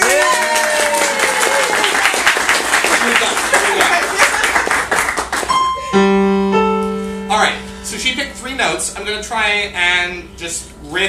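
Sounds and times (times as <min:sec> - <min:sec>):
applause: 0:00.0 - 0:05.7
grand piano single notes: 0:05.5 - 0:11.0.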